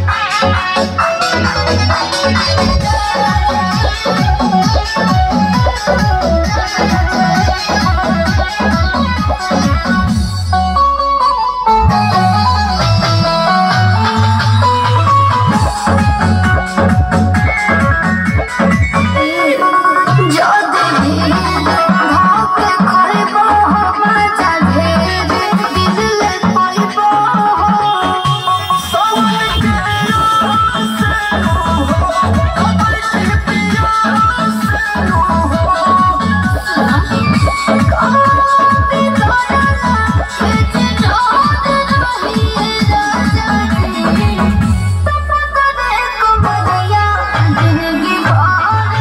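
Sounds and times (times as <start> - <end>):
loud dance music over loudspeakers: 0.0 - 49.0
steady bass line: 0.0 - 49.0
high melody line: 26.8 - 33.4.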